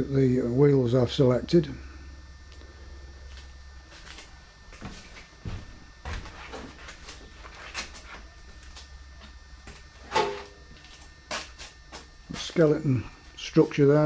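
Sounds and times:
low steady hum: 0.0s - 14.0s.

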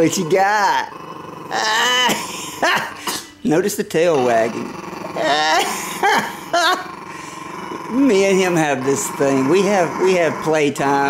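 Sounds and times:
small dog growling: 0.0s - 3.0s, 3.9s - 11.0s
man laughing: 2.1s - 3.0s, 5.2s - 6.9s.

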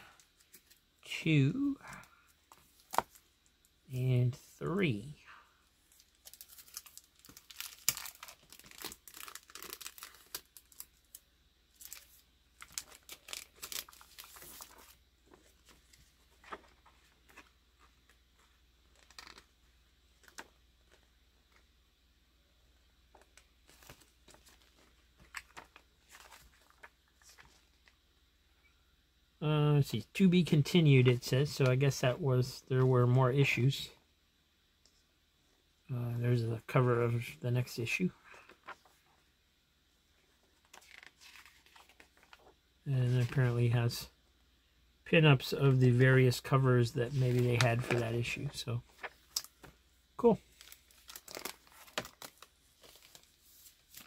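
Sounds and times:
comic book pages turning: 5.9s - 11.2s, 11.8s - 19.5s, 23.1s - 28.0s, 40.6s - 43.4s, 47.1s - 49.7s, 50.5s - 54.0s.

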